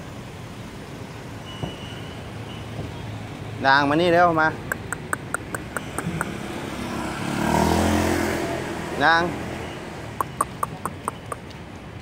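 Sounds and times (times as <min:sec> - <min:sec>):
vehicle engine passing by: 0:04.9 - 0:11.5.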